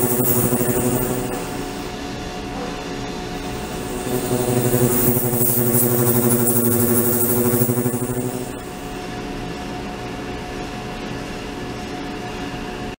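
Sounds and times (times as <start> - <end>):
ultrasonic tank humming: 0.0 - 9.4.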